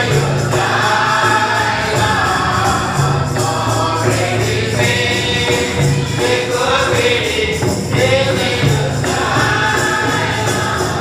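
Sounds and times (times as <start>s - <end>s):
choir singing gospel song: 0.0s - 11.0s
sustained low accompanying notes: 0.0s - 11.0s.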